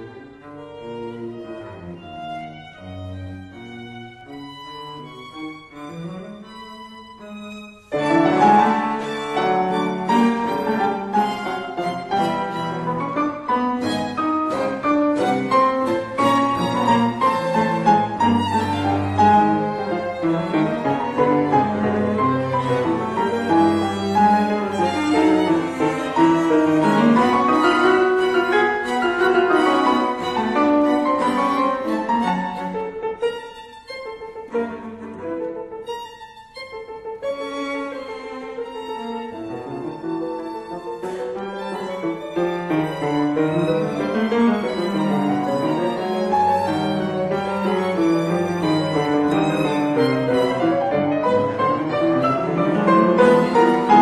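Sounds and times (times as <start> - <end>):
piano trio playing chamber music: 0.0 - 54.0.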